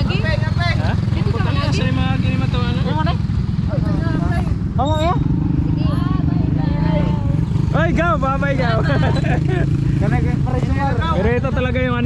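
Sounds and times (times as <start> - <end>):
people talking and calling: 0.0 - 12.0.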